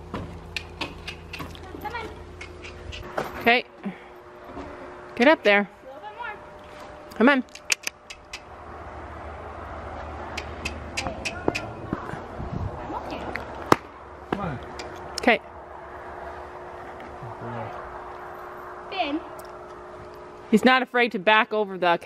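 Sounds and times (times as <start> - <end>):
steady hum: 0.0 - 22.0
low rumble: 8.4 - 20.4.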